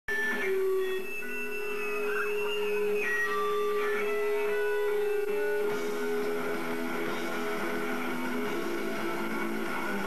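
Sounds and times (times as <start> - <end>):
electric guitars holding notes: 0.1 - 10.0
guitar strumming: 0.1 - 10.0.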